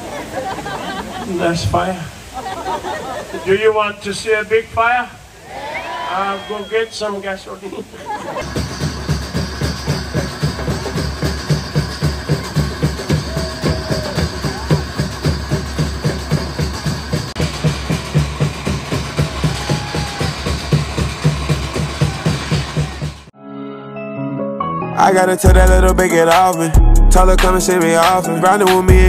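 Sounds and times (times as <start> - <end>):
music with steady drum beat: 8.4 - 23.3, 25.4 - 29.0.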